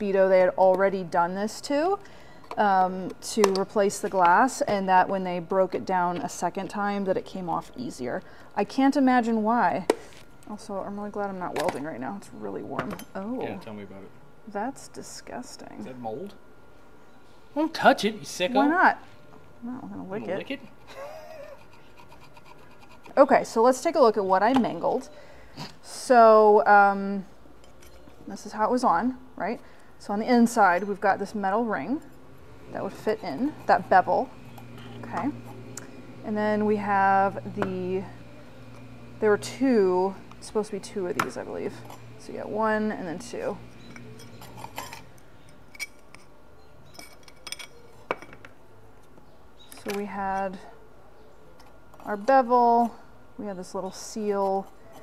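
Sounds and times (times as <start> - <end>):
screwdriver scratching metal: 43.8 - 45.1
glass and metal rings clinking: 43.8 - 48.4.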